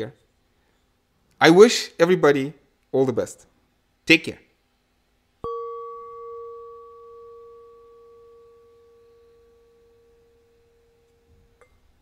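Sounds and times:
bell tone ringing: 5.4 - 11.6.

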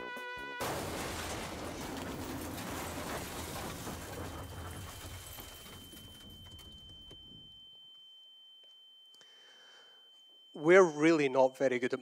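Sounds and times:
high-pitched ringing tone: 4.4 - 12.0.

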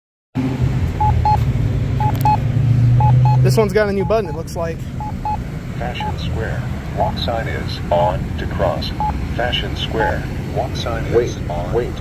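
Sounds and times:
low traffic rumble: 0.4 - 12.0
short high beeps: 3.0 - 4.4, 5.0 - 5.4.

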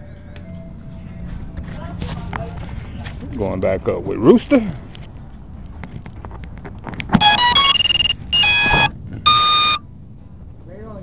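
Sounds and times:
electronic start-up beeps from motors: 7.2 - 9.8.

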